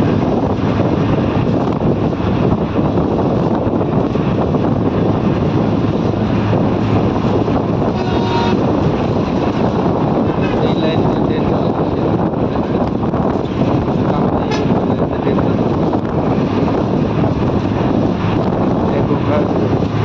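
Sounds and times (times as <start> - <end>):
vehicle running noise and wind: 0.0 - 20.0.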